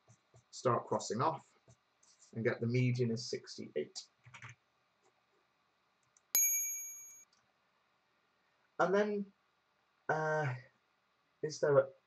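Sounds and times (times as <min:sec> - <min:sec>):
bright electronic chime: 0:06.4 - 0:07.2.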